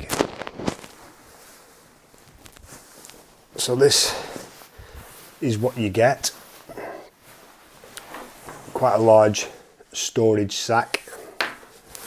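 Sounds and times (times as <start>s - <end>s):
fabric sack rustling: 0.0s - 9.4s.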